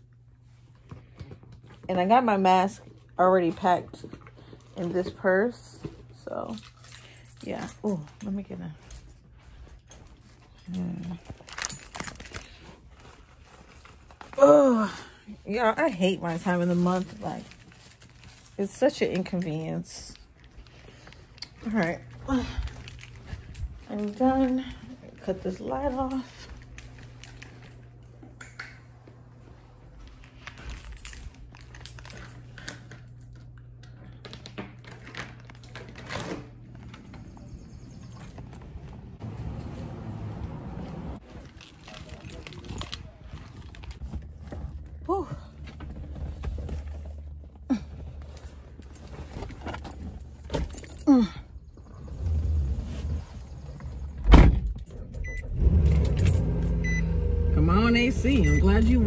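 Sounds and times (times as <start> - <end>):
air-conditioning fan: 0.0 - 59.0
keys jangling: 6.4 - 12.7, 21.4 - 28.8, 30.2 - 33.6, 48.7 - 51.4, 54.6 - 57.0
car engine rumble: 36.9 - 41.8, 42.4 - 59.0.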